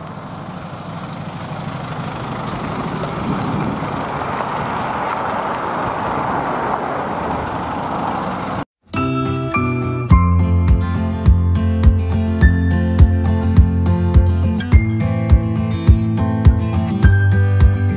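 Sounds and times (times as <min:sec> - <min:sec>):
minibus diesel engine: 0:00.0 - 0:08.7, 0:09.9 - 0:17.9
tyres on slushy road: 0:00.0 - 0:08.7.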